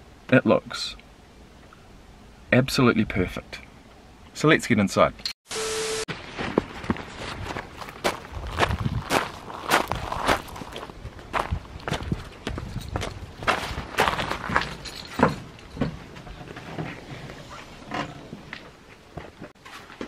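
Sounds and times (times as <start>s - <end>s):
footsteps crunching on gravel: 6.1s - 14.8s.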